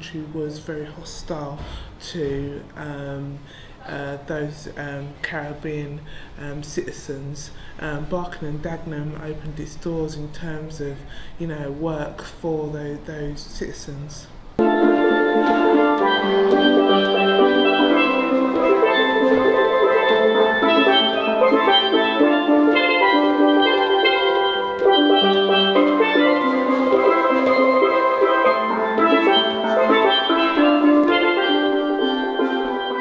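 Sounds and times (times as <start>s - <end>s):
steel pans playing lively tune: 14.6s - 33.0s.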